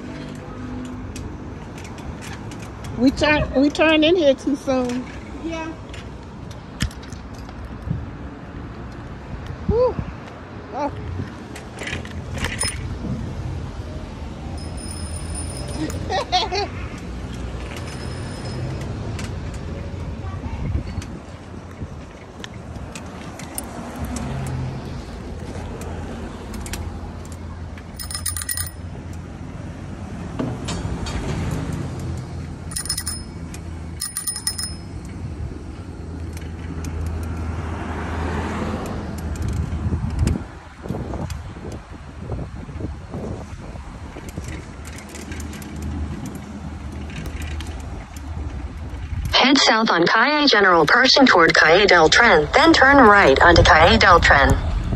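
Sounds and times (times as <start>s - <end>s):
street traffic: 0.0s - 54.9s
wind: 0.0s - 54.9s
bicycle bell ringing: 12.5s - 12.9s, 14.6s - 16.4s, 17.8s - 18.8s, 27.9s - 29.0s, 32.7s - 35.2s.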